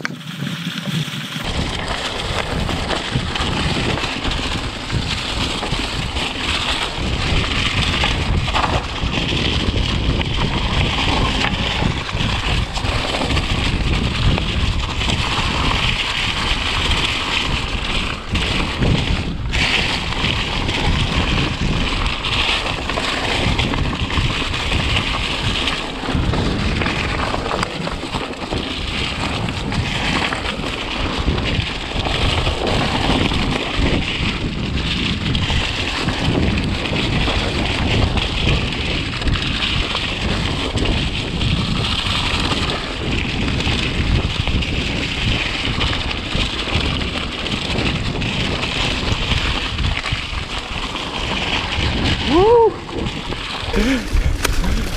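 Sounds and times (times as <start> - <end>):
bike jolting over bumps: 0.0 - 54.9
wind rush on microphone: 0.0 - 54.9
tyres rolling over leaves and dirt: 0.1 - 54.9.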